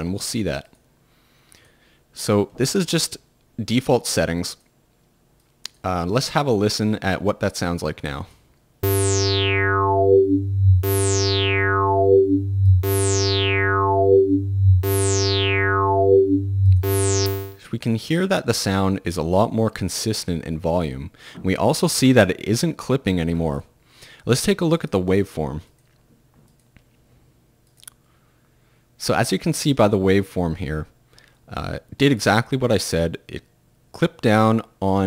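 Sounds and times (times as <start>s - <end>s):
steady low bass: 8.8s - 17.6s
synthesizer sustained note: 8.8s - 17.6s.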